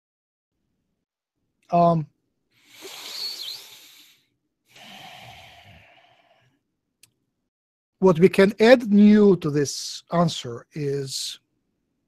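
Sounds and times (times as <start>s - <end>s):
man breathing deeply: 2.6s - 6.6s.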